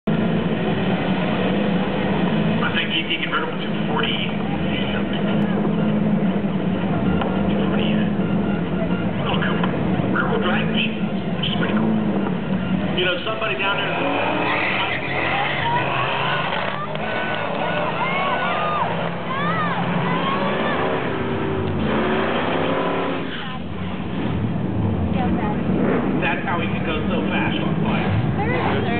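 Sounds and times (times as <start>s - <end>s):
car engine idling: 0.0s - 28.9s.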